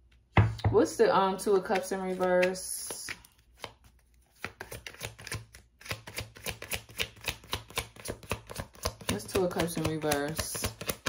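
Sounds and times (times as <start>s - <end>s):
cards snapping while shuffled: 1.7s - 11.0s.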